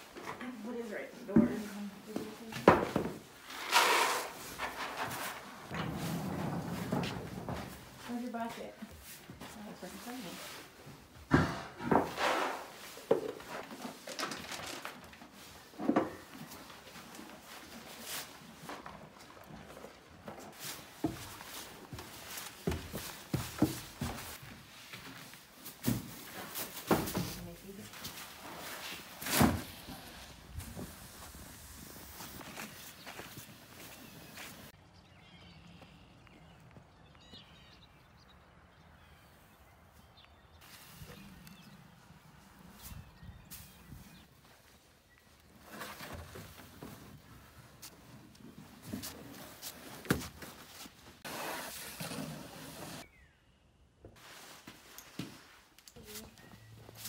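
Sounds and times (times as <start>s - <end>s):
knocks and thumps in horse stall: 2.5s - 3.4s, 4.4s - 8.2s, 11.2s - 14.0s, 18.6s - 24.4s, 25.8s - 27.5s.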